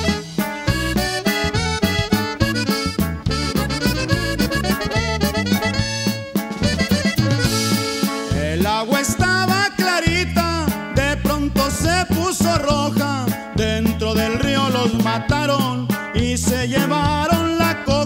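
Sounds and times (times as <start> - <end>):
accordion-led band playing: 0.0 - 18.0.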